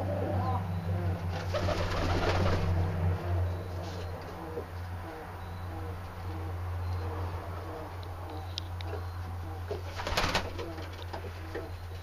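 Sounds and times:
pigeons cooing softly: 0.0s - 12.0s
steady low hum: 0.0s - 12.0s.

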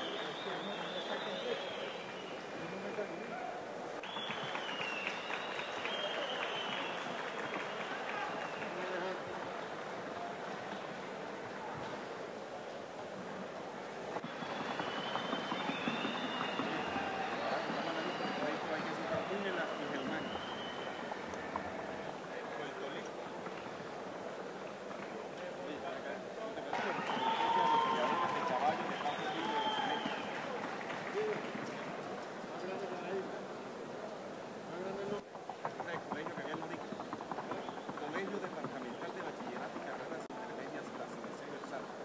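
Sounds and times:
crowd voices: 0.0s - 35.2s
hooves clattering on wooden board: 14.2s - 19.2s, 35.2s - 42.0s.

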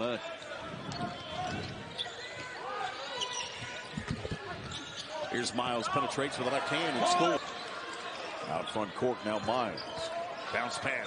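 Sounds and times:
crowd chatter: 0.0s - 11.0s
sneakers squeaking: 0.3s - 11.0s.

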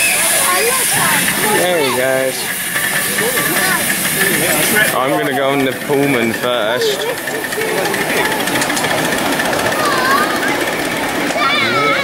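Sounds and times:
people talking: 0.0s - 12.0s
steam locomotive hissing: 0.0s - 12.0s.

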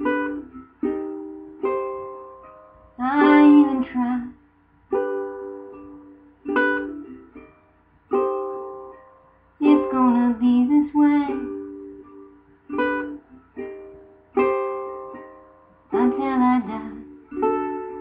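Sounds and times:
strummed acoustic string chords: 0.0s - 18.0s.

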